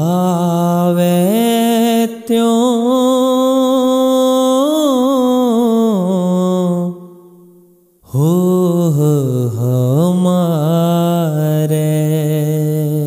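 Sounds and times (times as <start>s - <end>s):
person singing devotional song: 0.0s - 13.0s.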